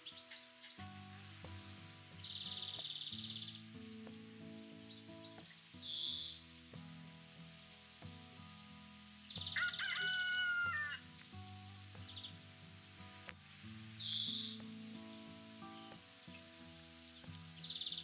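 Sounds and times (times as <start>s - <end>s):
soft background music: 0.1s - 18.0s
rooster crowing: 9.5s - 11.0s.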